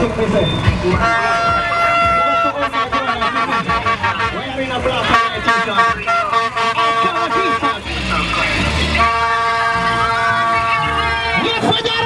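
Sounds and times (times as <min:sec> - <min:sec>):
people shouting: 0:01.0 - 0:04.3
vuvuzela blasts: 0:01.0 - 0:08.2, 0:08.8 - 0:11.7.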